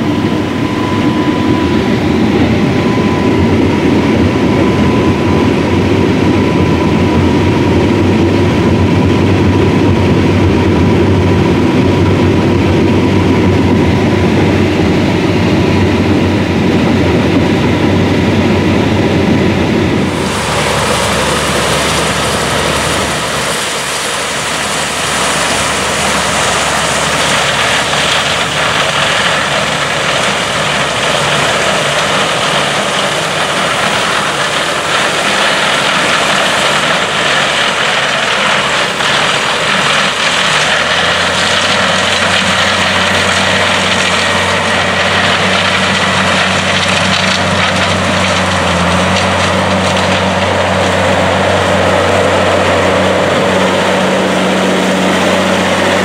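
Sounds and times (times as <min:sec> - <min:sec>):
combine harvester engine and threshing: 0:00.0 - 0:56.0
tractor engine hum: 0:00.0 - 0:56.0.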